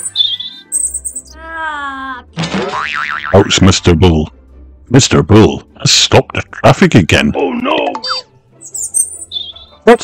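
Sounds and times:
high bird-like chirps: 0:00.0 - 0:01.4, 0:08.0 - 0:09.8.

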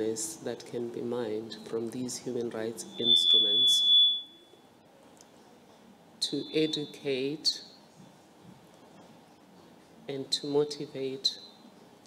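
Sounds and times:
high whistle-like tone: 0:02.9 - 0:04.6, 0:06.4 - 0:07.0.

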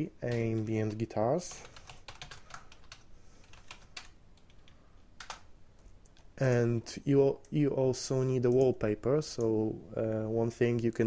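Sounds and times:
typing on computer keyboard: 0:00.2 - 0:06.6.

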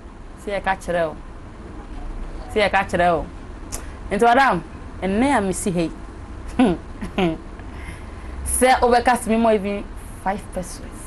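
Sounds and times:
low hum: 0:00.0 - 0:11.0
woman speaking: 0:00.4 - 0:01.2, 0:02.4 - 0:03.3, 0:04.1 - 0:07.4, 0:08.4 - 0:11.0.

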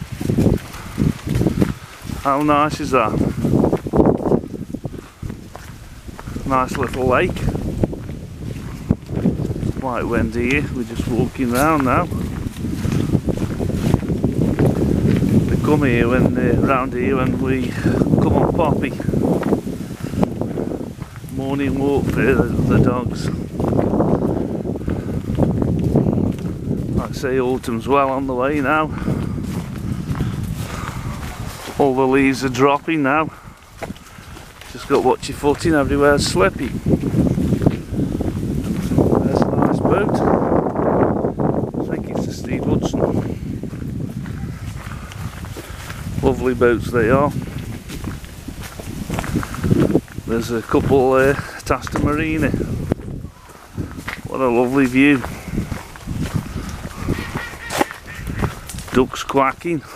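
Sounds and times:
footsteps on leaf-strewn dirt path: 0:00.0 - 0:59.9
ducks quacking: 0:56.4 - 0:58.8.

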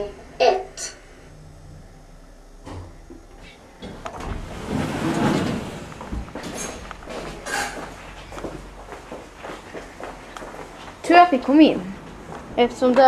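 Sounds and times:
elevator doors sliding open: 0:04.0 - 0:07.8.

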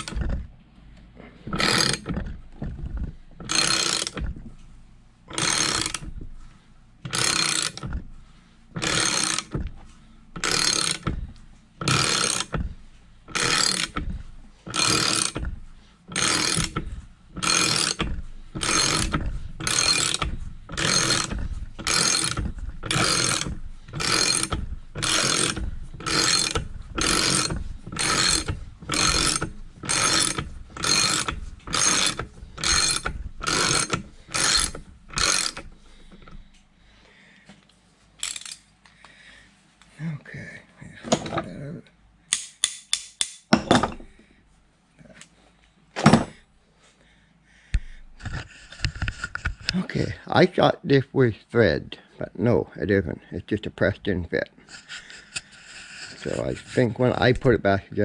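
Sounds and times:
ratchet wrench clicking: 0:01.5 - 0:04.4, 0:05.3 - 0:06.2, 0:07.1 - 0:08.1, 0:08.8 - 0:09.8, 0:10.4 - 0:36.4, 0:38.2 - 0:38.7, 0:42.3 - 0:43.5.

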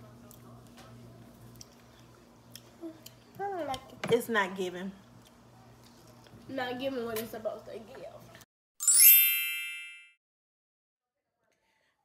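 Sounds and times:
bright ringing chime: 0:08.8 - 0:10.2.

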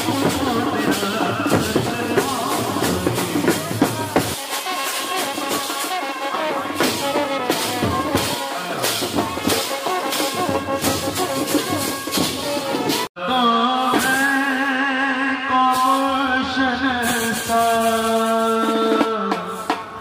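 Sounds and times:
trumpet melody: 0:00.0 - 0:14.8
drums and percussion: 0:00.0 - 0:20.0.

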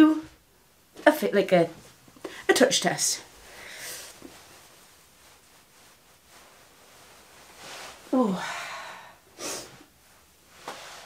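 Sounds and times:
low room hiss: 0:00.0 - 0:11.0
towel rustling against face: 0:03.2 - 0:08.3, 0:09.8 - 0:11.0.

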